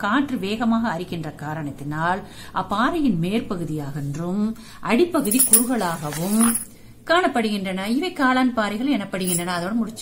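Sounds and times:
woman speaking: 0:00.0 - 0:10.0
bangles jingling: 0:05.2 - 0:06.7, 0:09.2 - 0:09.8.

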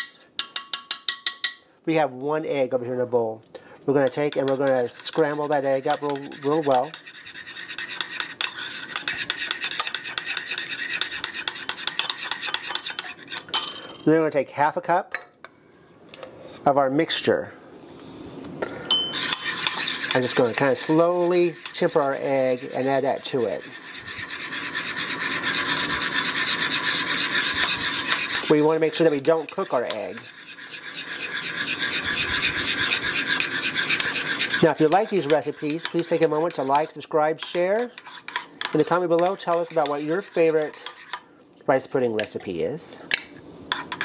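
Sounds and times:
spoon beating egg in bowl: 0:00.0 - 0:01.6, 0:04.0 - 0:13.7, 0:18.9 - 0:41.2, 0:43.7 - 0:44.0.

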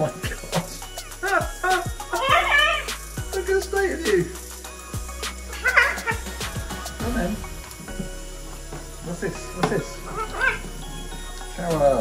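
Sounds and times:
running tap water: 0:00.0 - 0:12.0
macaw call: 0:05.5 - 0:06.9, 0:10.0 - 0:10.7.

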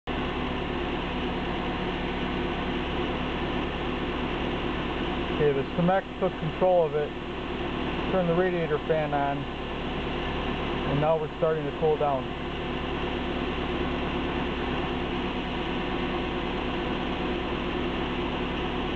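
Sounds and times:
car engine idling: 0:00.1 - 0:18.9
electric radiator fan running: 0:00.1 - 0:18.9.

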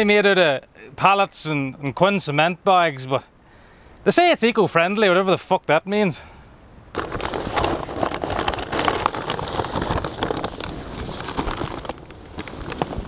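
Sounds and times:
plastic sacks rustling and crinkling: 0:07.0 - 0:13.0.

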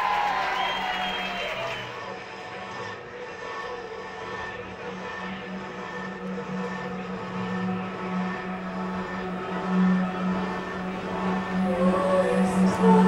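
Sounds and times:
low synthesizer drone: 0:01.5 - 0:13.0.

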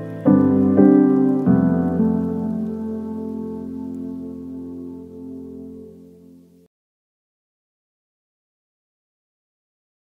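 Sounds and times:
slow sustained chords: 0:00.0 - 0:06.7.

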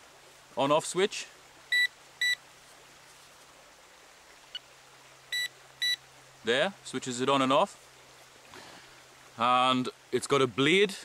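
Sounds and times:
short high beeps: 0:01.7 - 0:02.4, 0:05.3 - 0:06.0.

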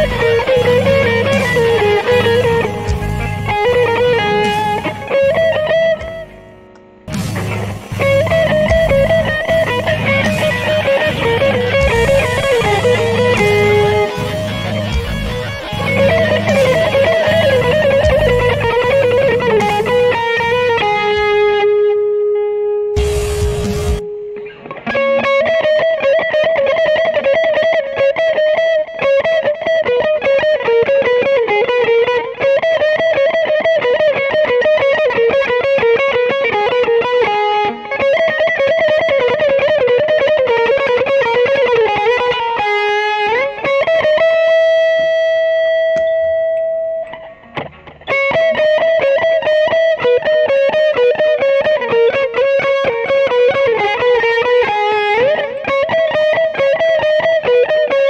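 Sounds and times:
distorted electric guitar runs: 0:00.0 - 0:22.0, 0:23.0 - 0:28.4.

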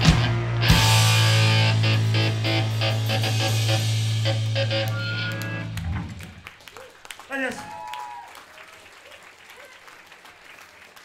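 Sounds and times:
punk band playing live: 0:00.0 - 0:06.5.

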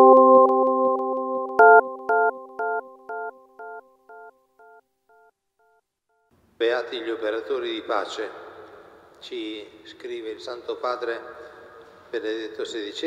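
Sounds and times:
held synthesizer chord: 0:00.0 - 0:04.8
repeated echoing synth chord: 0:00.0 - 0:04.8.

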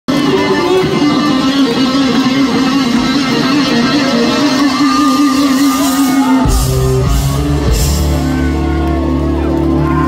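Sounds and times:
electric guitar sustained notes: 0:00.1 - 0:10.0
live rock band playing: 0:00.1 - 0:10.0.

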